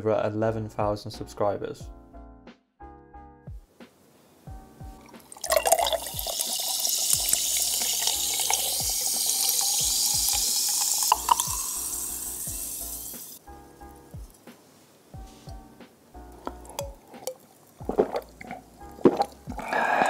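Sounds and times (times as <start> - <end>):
light background music beat: 0.3 - 20.0
drink pouring into a glass: 5.0 - 13.4, 16.3 - 20.0.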